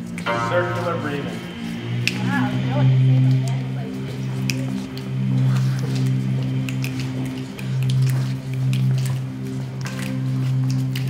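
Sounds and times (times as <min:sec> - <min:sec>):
voices droning hum: 0:00.0 - 0:10.9.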